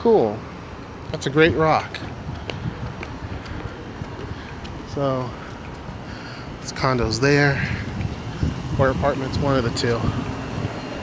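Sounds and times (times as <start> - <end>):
distant traffic hiss: 0.0 - 11.0
wind on microphone: 1.4 - 11.0
footsteps on concrete: 1.9 - 7.0.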